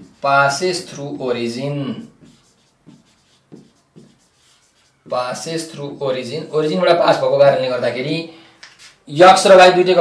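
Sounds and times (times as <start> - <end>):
marker writing on whiteboard: 0.0 - 6.8.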